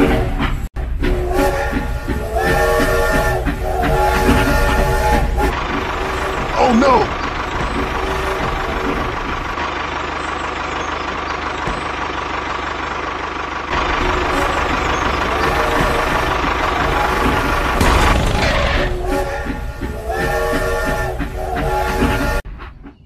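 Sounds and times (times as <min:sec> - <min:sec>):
short voice-like cry: 0:06.6 - 0:07.1.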